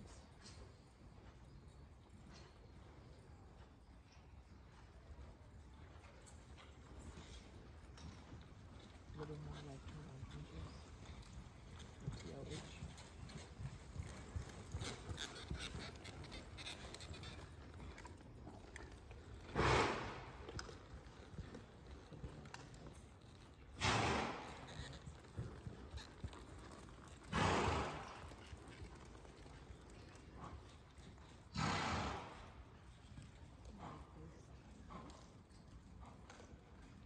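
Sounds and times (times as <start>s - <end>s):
horse hooves on soft dirt: 0.0s - 37.0s
horse hoofbeats on sand: 6.1s - 22.9s
horse blowing through nostrils: 19.5s - 20.4s, 23.8s - 24.7s, 27.3s - 28.2s, 31.5s - 32.5s.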